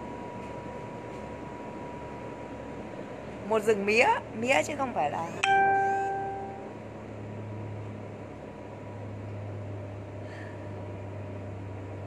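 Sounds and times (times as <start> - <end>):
low machine hum with hiss: 0.0 - 12.0
bell-like ringing tone: 5.4 - 6.7.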